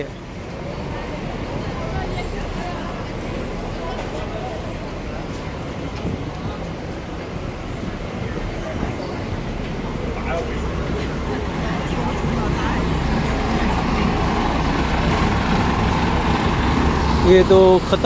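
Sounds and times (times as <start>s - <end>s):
bus engine rumbling: 0.0s - 18.0s
road traffic noise: 0.0s - 18.0s.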